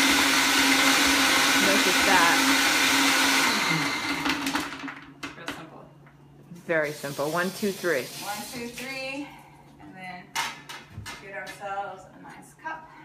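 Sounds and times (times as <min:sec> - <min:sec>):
blender motor winding down: 0:00.0 - 0:04.9
blender chopping ice: 0:00.0 - 0:05.1.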